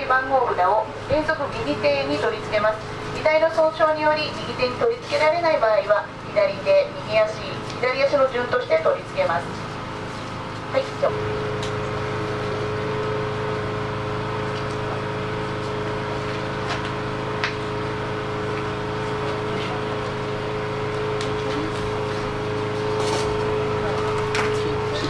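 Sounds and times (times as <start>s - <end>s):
steady machine hum: 0.0s - 25.0s.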